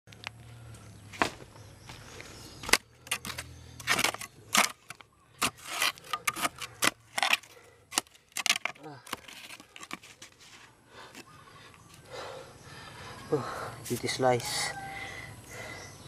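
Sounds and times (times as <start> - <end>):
hand tool digging into dry soil: 2.6 - 11.2.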